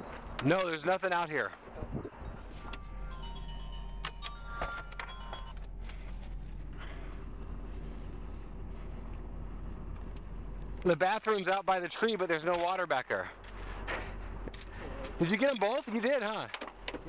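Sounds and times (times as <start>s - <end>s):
car engine idling: 2.2s - 17.0s
short high tones: 2.7s - 6.0s.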